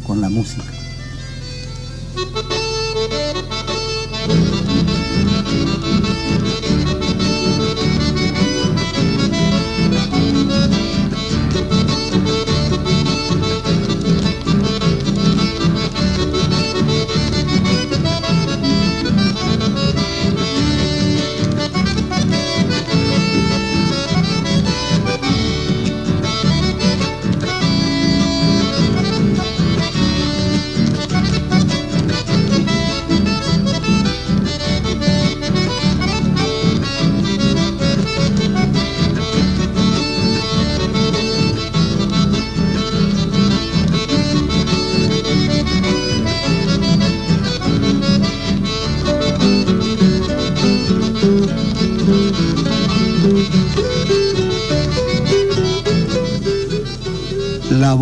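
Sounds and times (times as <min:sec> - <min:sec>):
accordion-led folk music: 0:00.0 - 0:58.0
bass: 0:00.0 - 0:58.0
guitar: 0:00.0 - 0:58.0.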